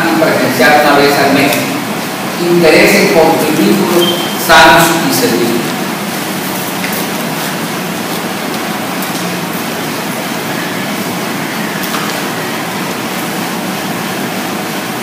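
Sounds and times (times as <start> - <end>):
hiss-like room tone: 0.0 - 15.0.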